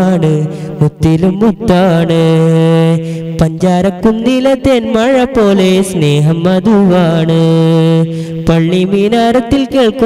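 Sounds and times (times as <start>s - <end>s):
young man singing devotional song: 0.0s - 10.0s.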